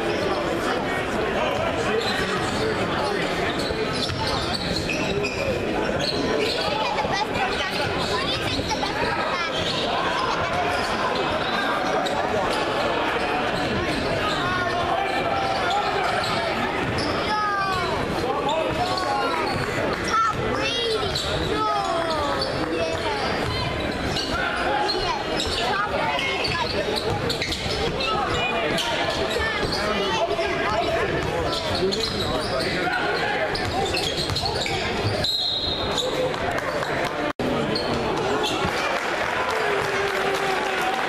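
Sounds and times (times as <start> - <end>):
crowd chatter: 0.0 - 41.0
sneakers squeaking: 1.4 - 38.9.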